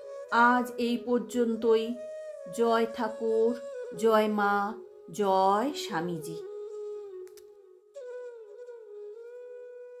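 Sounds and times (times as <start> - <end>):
held wavering musical note: 0.0 - 10.0.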